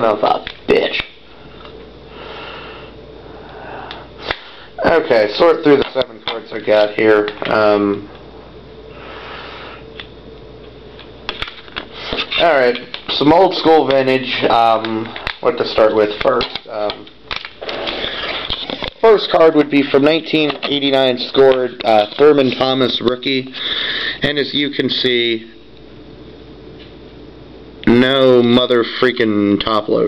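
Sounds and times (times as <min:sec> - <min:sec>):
person speaking: 0:00.0 - 0:01.2, 0:04.7 - 0:08.2, 0:11.9 - 0:17.2, 0:18.0 - 0:25.6
soft breathy noise: 0:01.4 - 0:04.8
person sniffing: 0:02.1 - 0:04.8, 0:08.9 - 0:09.9.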